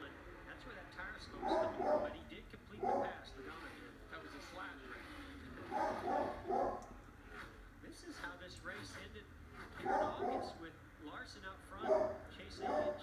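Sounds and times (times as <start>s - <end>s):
commentator talking on tv: 0.0s - 6.6s, 7.8s - 13.0s.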